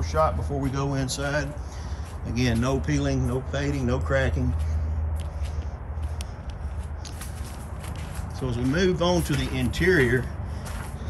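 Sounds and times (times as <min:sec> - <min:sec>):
footsteps on gravel: 0:00.0 - 0:11.0
steady low rumble: 0:00.0 - 0:11.0.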